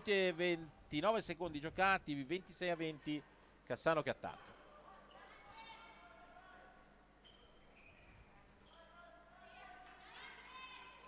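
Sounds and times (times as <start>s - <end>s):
faint handball match: 4.2s - 11.0s.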